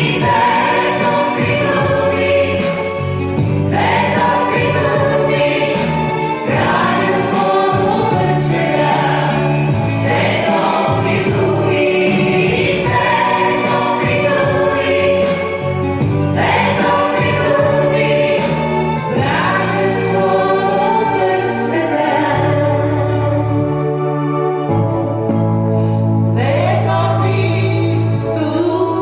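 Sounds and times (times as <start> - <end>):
voices singing together: 0.0 - 23.5, 26.3 - 29.0
held bass line: 0.0 - 29.0
instrumental accompaniment: 0.0 - 29.0.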